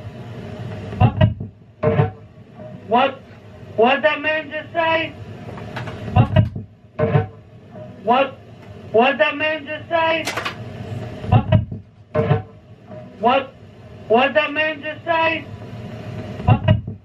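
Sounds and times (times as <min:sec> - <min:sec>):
deep thuds: 0:01.0 - 0:02.2, 0:11.3 - 0:12.5.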